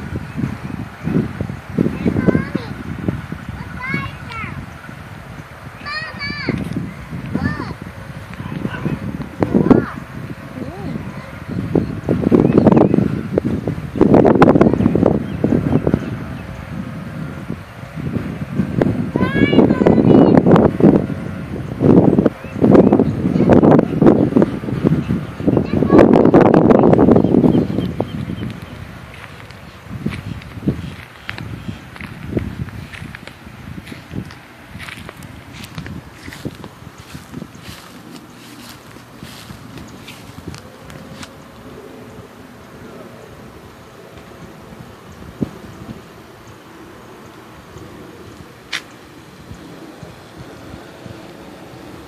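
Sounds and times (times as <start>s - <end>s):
wind buffeting microphone: 0.0s - 52.0s.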